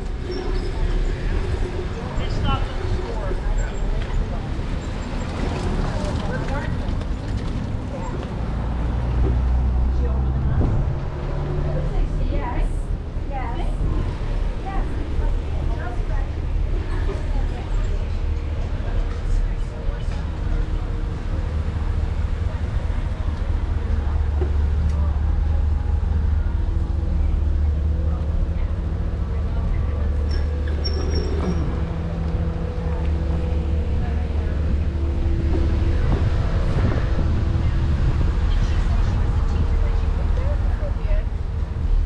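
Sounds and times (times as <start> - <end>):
indistinct voices of passers-by: 0.0 - 42.0
vehicle engine hum: 0.0 - 42.0
wind rumble on microphone: 0.0 - 42.0.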